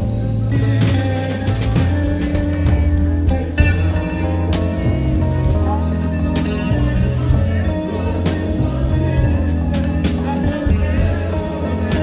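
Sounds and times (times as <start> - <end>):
live band music over sound system: 0.0 - 12.0.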